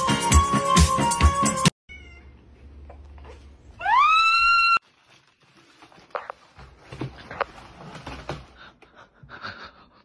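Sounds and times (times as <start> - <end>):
background music with beat: 0.0 - 1.7
cat meowing: 1.9 - 2.4.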